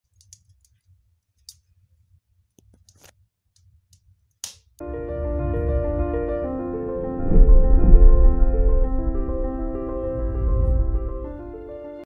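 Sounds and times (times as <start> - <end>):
low steady rumble: 4.8 - 11.7.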